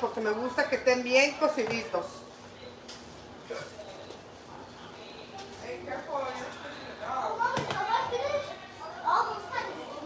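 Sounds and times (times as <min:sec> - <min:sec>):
child talking: 0:07.4 - 0:10.0.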